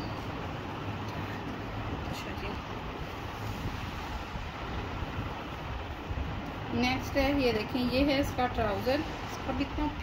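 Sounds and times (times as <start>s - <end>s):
steady low rumbling: 0.0s - 10.0s.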